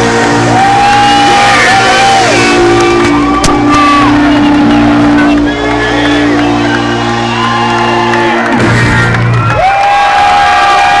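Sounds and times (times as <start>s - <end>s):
amplified electric guitar and bass: 0.0s - 10.2s
crowd cheering and whooping: 0.0s - 11.0s.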